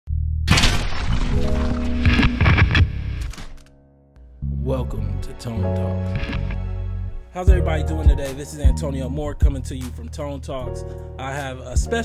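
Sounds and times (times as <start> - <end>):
low hum: 0.5 - 3.8
steady musical notes: 1.4 - 12.0
crackling static noise: 1.7 - 3.7, 6.1 - 6.6.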